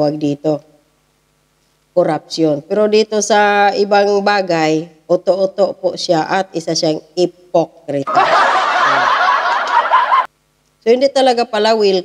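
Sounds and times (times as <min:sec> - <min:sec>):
crowd laughing: 0:08.1 - 0:10.3.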